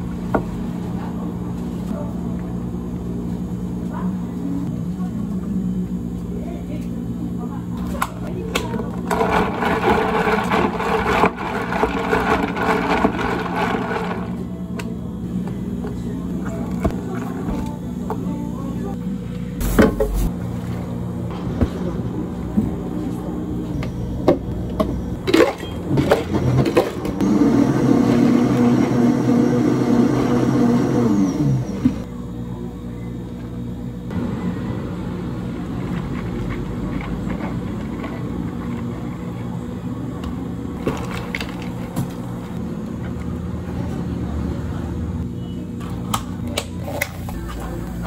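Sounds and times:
blender motor running: 0:09.0 - 0:14.4, 0:26.0 - 0:32.1
plastic cups and ice clinking: 0:35.6 - 0:39.4.

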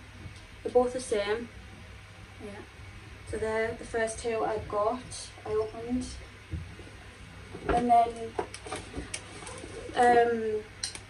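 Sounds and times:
woman speaking: 0:00.7 - 0:01.5, 0:03.3 - 0:06.2, 0:07.7 - 0:08.4, 0:09.9 - 0:10.7.

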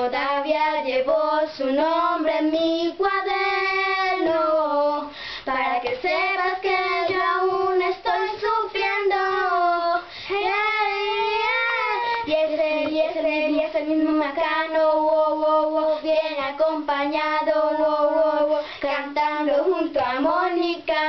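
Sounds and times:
young girls singing: 0:00.0 - 0:21.0.

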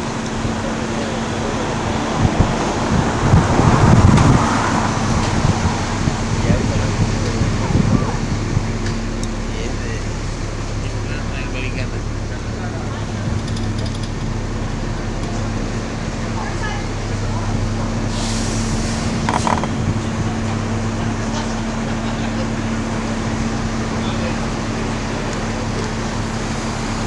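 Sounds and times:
bus engine drone: 0:00.0 - 0:27.0
street traffic: 0:00.0 - 0:27.0.

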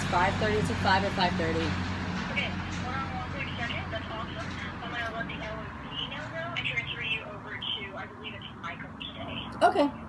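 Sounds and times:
road traffic hum: 0:00.0 - 0:10.0
voice through phone speaker: 0:02.4 - 0:10.0.

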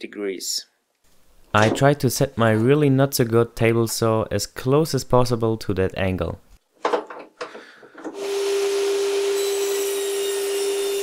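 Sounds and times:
table saw running: 0:08.2 - 0:11.0.

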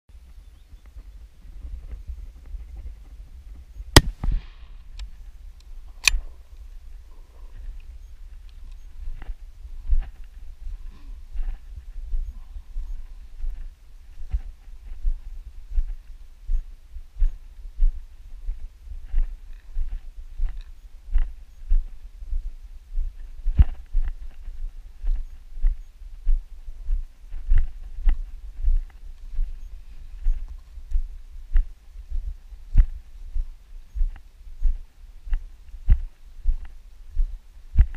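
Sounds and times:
constant low rumble: 0:00.1 - 0:37.9
rifle shot with echo: 0:04.0 - 0:04.8.

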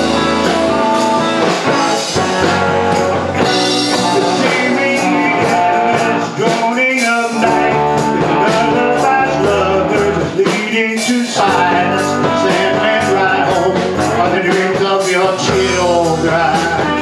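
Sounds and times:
live rock band playing: 0:00.0 - 0:17.0
steady drum beat: 0:00.0 - 0:17.0
man singing: 0:00.2 - 0:17.0.

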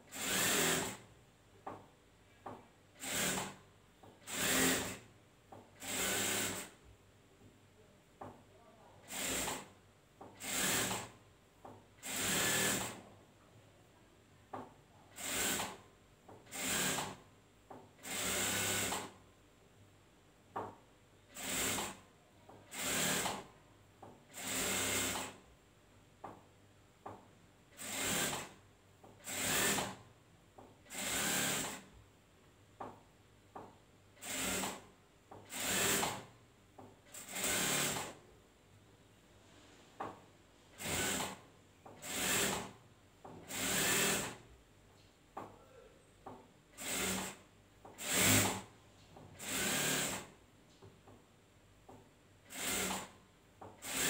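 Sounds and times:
sewing machine stitching: 0:00.1 - 0:01.0, 0:03.0 - 0:03.6, 0:04.2 - 0:05.1, 0:05.8 - 0:06.8, 0:10.4 - 0:11.2, 0:12.0 - 0:13.0, 0:16.4 - 0:17.2, 0:22.7 - 0:23.5, 0:27.7 - 0:28.6, 0:34.2 - 0:34.9, 0:37.1 - 0:38.2, 0:40.8 - 0:41.4, 0:46.8 - 0:47.4, 0:48.0 - 0:48.7, 0:49.4 - 0:50.3, 0:52.5 - 0:53.2, 0:53.8 - 0:54.0.

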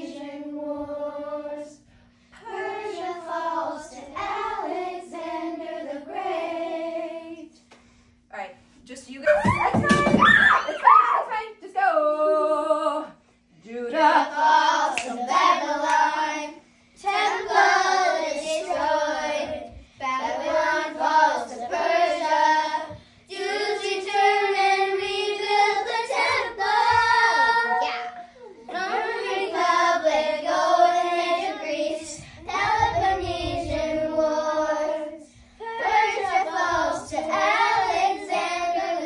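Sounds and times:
girls singing in unison: 0:00.0 - 0:07.6, 0:12.1 - 0:27.8, 0:28.6 - 0:39.0
faint steady hum: 0:00.0 - 0:39.0.

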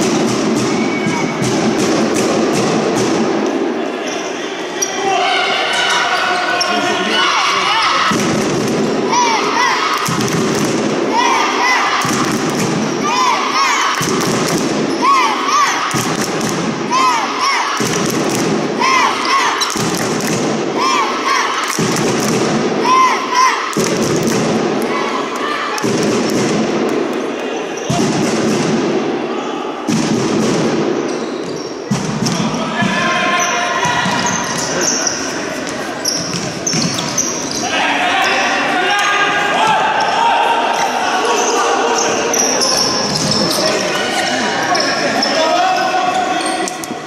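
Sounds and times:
voices echoing in a hall: 0:00.0 - 0:47.0
shoes squeaking on wooden floor: 0:34.1 - 0:37.7.

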